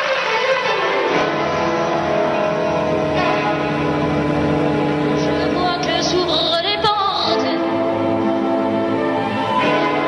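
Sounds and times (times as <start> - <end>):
orchestral strings holding chords: 0.0 - 10.0.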